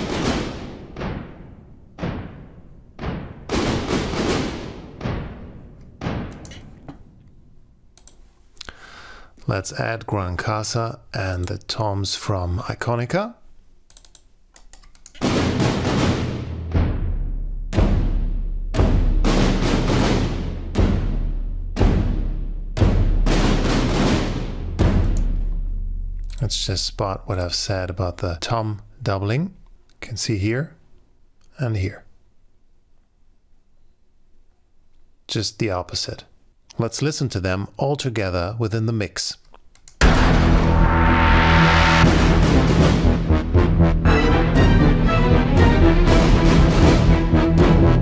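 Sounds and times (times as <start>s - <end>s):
cinematic trailer drum hits: 0.0s - 6.4s, 15.2s - 26.2s, 40.0s - 48.0s
synth snare: 15.2s - 26.4s, 40.0s - 45.2s
deep low tone: 40.0s - 44.1s.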